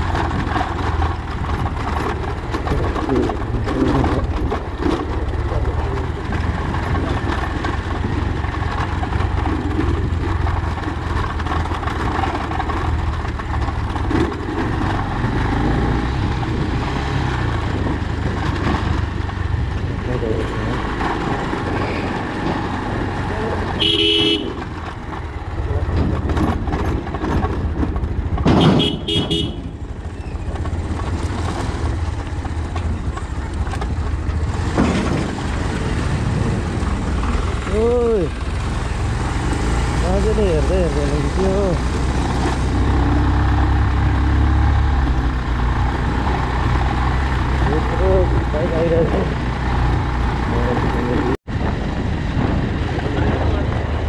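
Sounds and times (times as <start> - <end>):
motorcycle engine rumbling: 0.0 - 54.0
horn beep: 23.8 - 24.6, 28.6 - 29.6.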